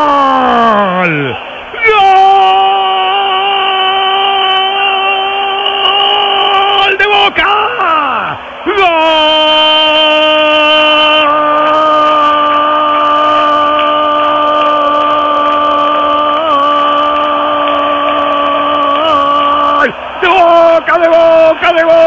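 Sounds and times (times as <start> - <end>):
commentator shouting goal: 0.0 - 22.0.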